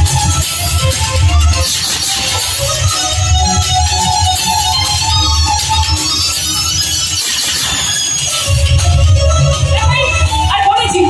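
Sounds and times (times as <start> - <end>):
melody over low bass: 2.6 - 7.1.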